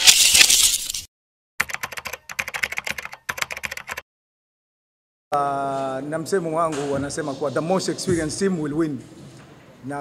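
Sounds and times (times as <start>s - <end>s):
keyboard typing clicks: 1.6s - 4.0s.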